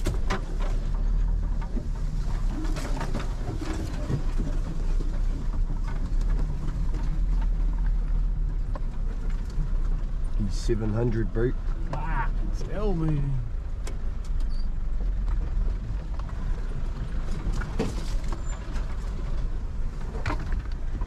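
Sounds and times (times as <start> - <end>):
knocks and rattles over bumps: 0.0 - 21.0
low engine rumble: 0.0 - 21.0.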